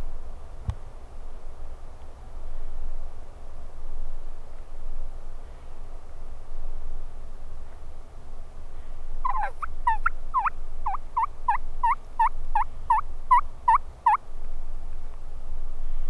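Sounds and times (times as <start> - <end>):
turkey yelps: 9.2 - 14.2.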